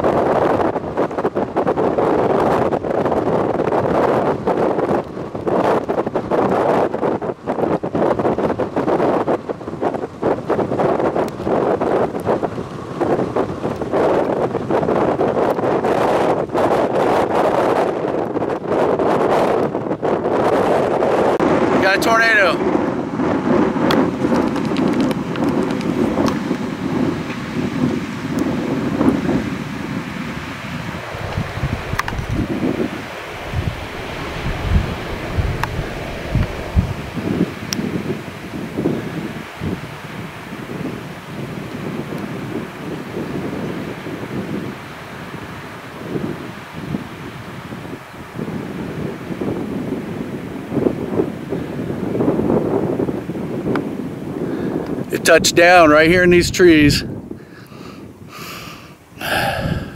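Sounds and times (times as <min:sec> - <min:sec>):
gusty storm wind on microphone: 0:00.0 - 0:59.9.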